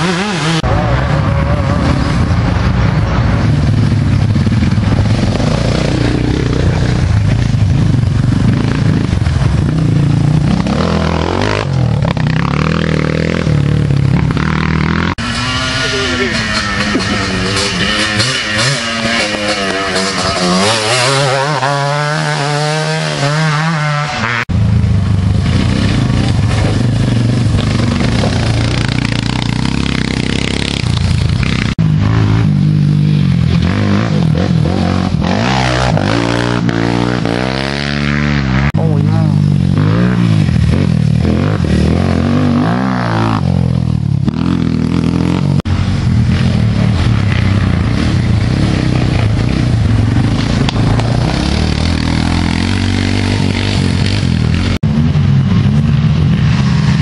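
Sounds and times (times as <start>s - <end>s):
quad engines revving: 0.0s - 55.1s.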